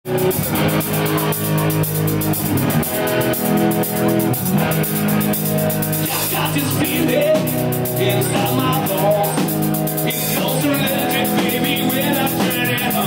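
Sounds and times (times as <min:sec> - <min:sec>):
drum kit: 0:00.0 - 0:13.0
electric guitars holding chords: 0:00.0 - 0:13.0
steady beat on cymbals: 0:00.2 - 0:13.0.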